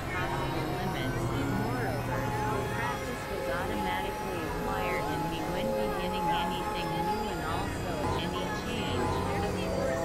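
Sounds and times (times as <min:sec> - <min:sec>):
low electronic hum: 0:00.0 - 0:10.0.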